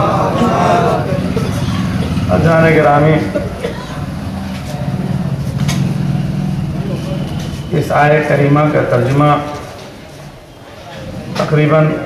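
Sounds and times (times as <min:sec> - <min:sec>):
low engine-like hum: 0:00.0 - 0:11.4.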